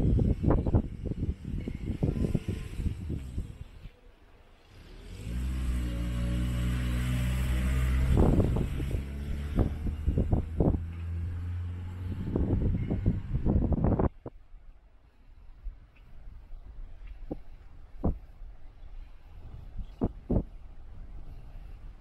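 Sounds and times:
vehicle engine humming: 0:00.0 - 0:22.0
irregular thumps: 0:17.0 - 0:18.4, 0:19.9 - 0:20.6.

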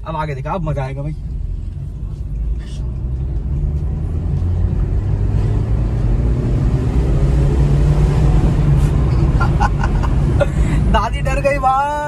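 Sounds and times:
car engine accelerating: 0:00.6 - 0:11.8.

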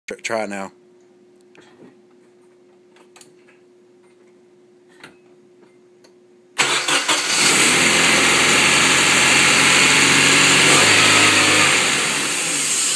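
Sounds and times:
car engine starting and idling: 0:06.6 - 0:12.9.

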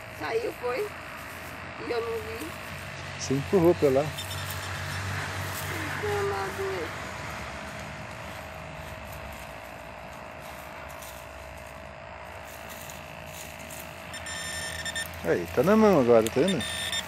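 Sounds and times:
metal detector steady tone: 0:00.0 - 0:17.0.

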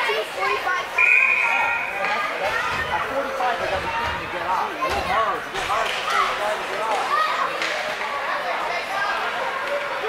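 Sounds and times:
children's voices: 0:00.0 - 0:10.0
spectators chatter: 0:00.0 - 0:10.0
high whistle blast: 0:01.0 - 0:02.0.

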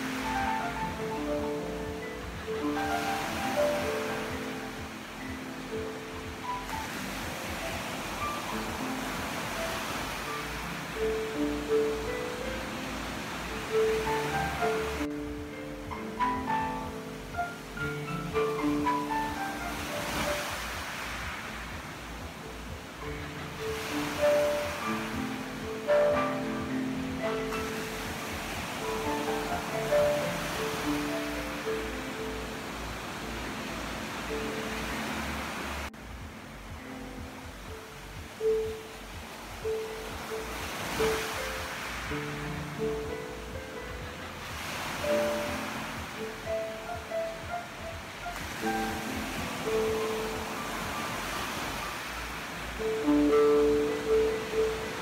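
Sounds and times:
ocean waves washing onto beach: 0:00.0 - 0:55.0
slow solo piano: 0:00.0 - 0:55.0.

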